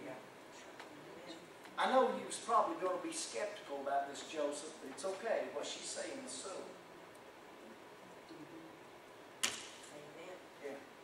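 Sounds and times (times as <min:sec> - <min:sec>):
sharp click: 0:09.4 - 0:09.9.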